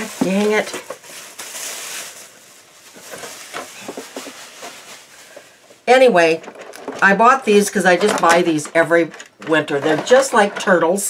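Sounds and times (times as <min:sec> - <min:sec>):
packaging crinkling: 0:00.0 - 0:10.4.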